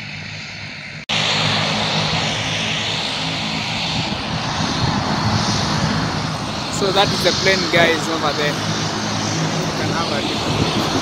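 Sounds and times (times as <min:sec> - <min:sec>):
airplane engines droning and whining: 0:00.0 - 0:11.0.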